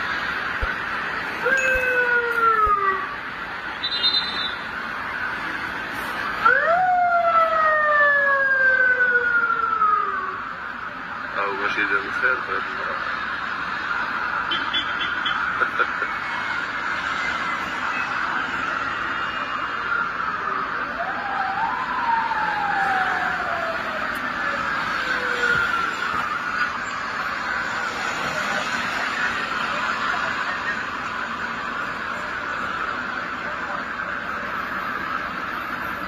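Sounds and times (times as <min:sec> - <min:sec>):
steady hum of traffic: 0:00.0 - 0:36.0.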